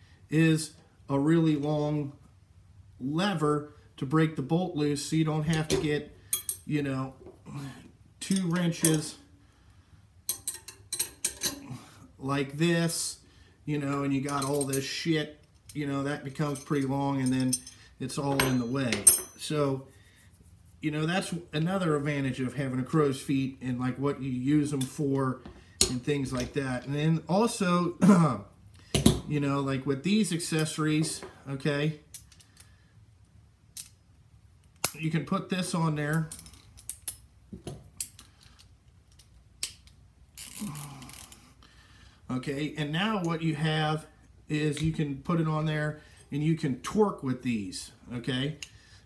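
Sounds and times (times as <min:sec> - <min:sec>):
steel wrenches clinking: 0:08.2 - 0:09.2, 0:10.3 - 0:11.7, 0:14.2 - 0:19.5
metal wrench clicking and clinking: 0:10.3 - 0:11.6, 0:36.1 - 0:37.3.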